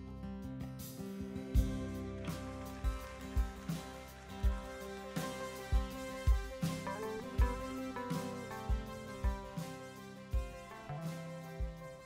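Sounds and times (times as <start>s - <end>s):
guitar: 0.0s - 12.0s
kick drum beats: 1.6s - 2.0s, 2.8s - 5.0s, 5.7s - 8.1s, 8.7s - 9.6s, 10.3s - 10.9s, 11.6s - 12.0s.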